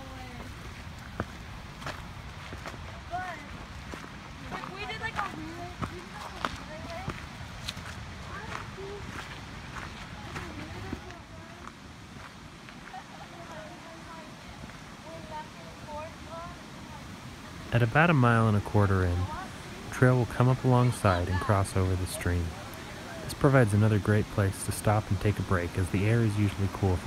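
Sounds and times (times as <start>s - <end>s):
footsteps on rocky dirt: 0.0s - 15.4s
faint voices talking: 2.7s - 11.8s, 12.7s - 27.0s.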